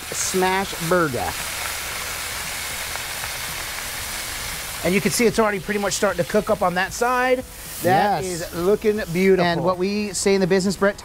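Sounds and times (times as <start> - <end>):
burger patties sizzling on griddle: 0.0 - 11.0.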